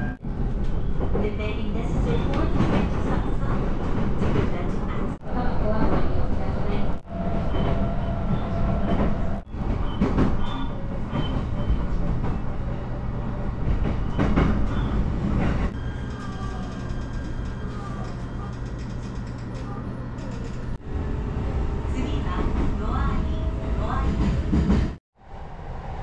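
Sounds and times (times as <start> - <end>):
train wheels rumbling on rail: 0.0 - 25.0
train hum in tunnel: 0.0 - 26.0.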